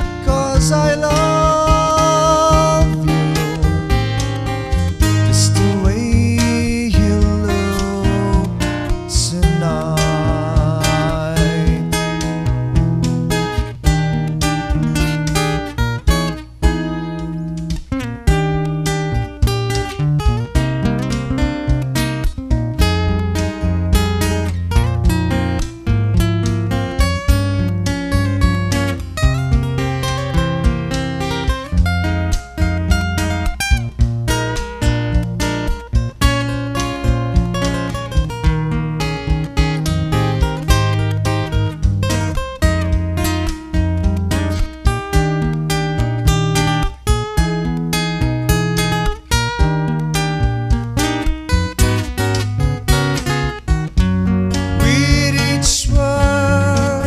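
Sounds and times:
acoustic guitar lead melody: 0.0 - 57.0
cajon beat: 0.0 - 57.0
strummed guitar chords: 0.0 - 57.0.

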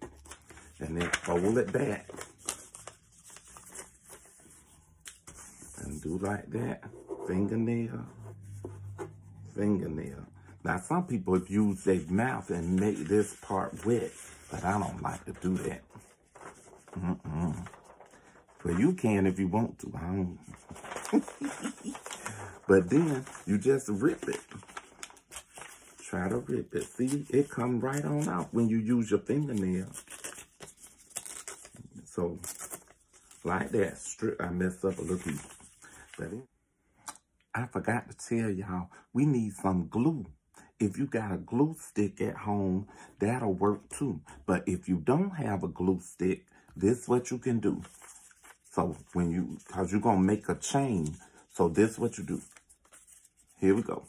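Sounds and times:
paper rustling: 0.0 - 7.3, 11.1 - 36.3, 47.6 - 54.0
paper tearing: 20.5 - 28.6.

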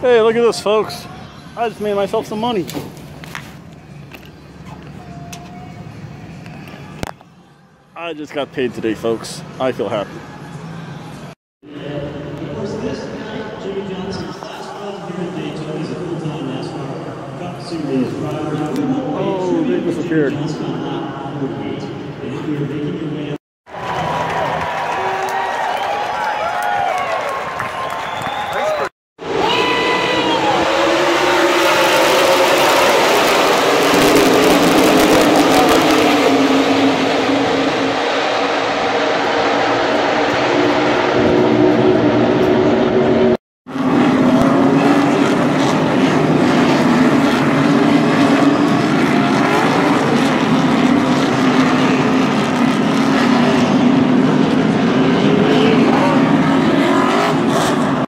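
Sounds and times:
race cars racing past: 29.2 - 58.0.

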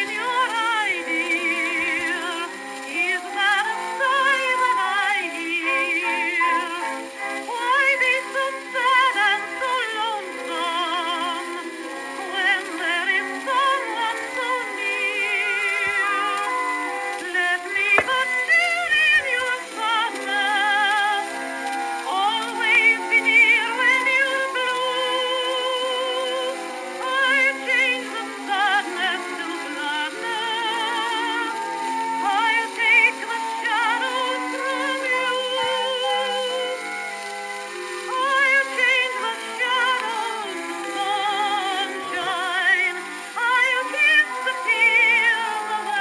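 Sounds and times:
woman singing with vibrato: 0.0 - 37.2, 37.8 - 46.0
instrumental accompaniment: 0.0 - 46.0.

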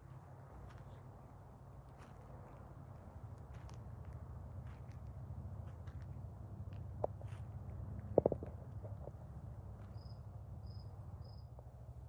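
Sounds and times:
cricket chirps: 9.8 - 11.6.

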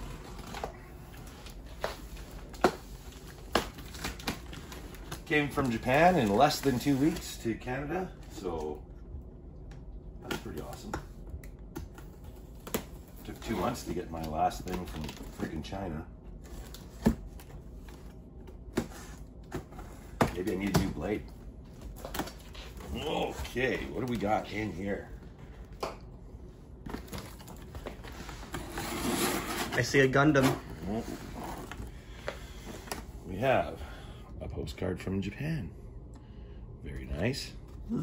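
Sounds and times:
cardboard scraping: 27.8 - 31.8.

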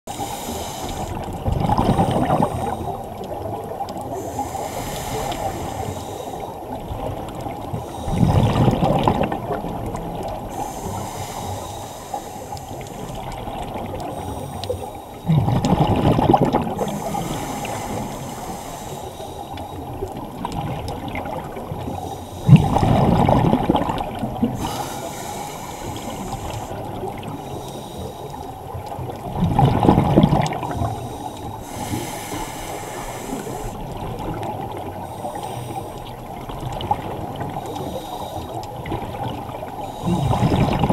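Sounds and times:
diver's breath bubbling underwater: 0.1 - 6.4, 8.0 - 14.6, 15.2 - 19.2, 22.4 - 27.4, 40.0 - 40.9
steady underwater hiss: 0.1 - 40.9.

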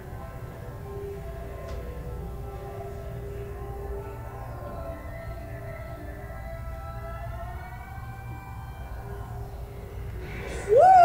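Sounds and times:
faint held music tones: 0.0 - 11.0
high-pitched voice squealing: 10.6 - 11.0.

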